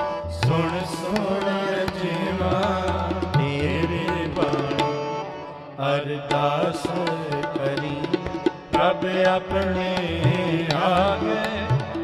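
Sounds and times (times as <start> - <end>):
harmonium held tones: 0.0 - 12.0
people singing: 0.3 - 12.0.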